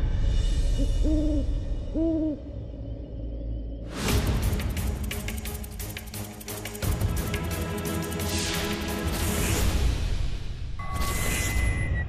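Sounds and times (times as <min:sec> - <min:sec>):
owl hooting: 0:00.8 - 0:02.5.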